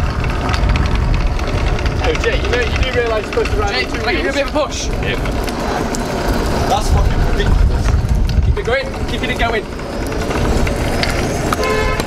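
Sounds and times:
scooter wheels rolling on asphalt: 0.0s - 12.0s
wind rumbling on microphone: 0.0s - 12.0s.

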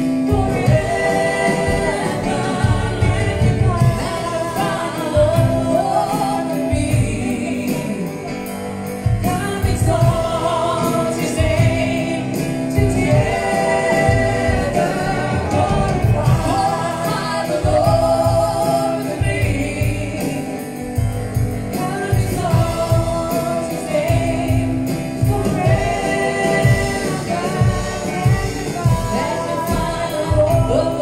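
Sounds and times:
voices singing gospel song: 0.0s - 31.0s.

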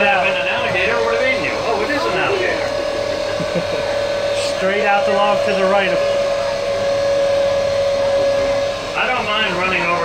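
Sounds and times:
boat motor hum and whine: 0.0s - 10.0s.

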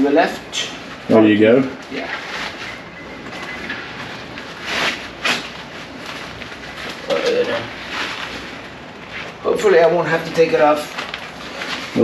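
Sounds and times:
tire cover scraping and rustling: 4.2s - 9.8s.

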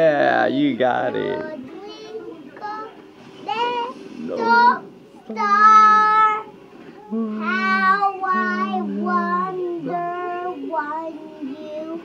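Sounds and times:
young boy singing unaccompanied: 7.1s - 12.0s.

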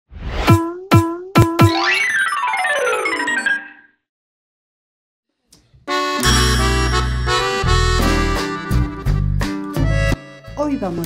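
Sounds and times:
cartoon boing jingle: 1.1s - 3.9s.

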